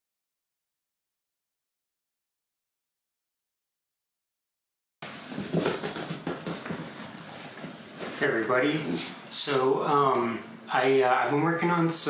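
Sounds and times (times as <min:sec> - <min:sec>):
dog moving about: 0:05.2 - 0:09.2.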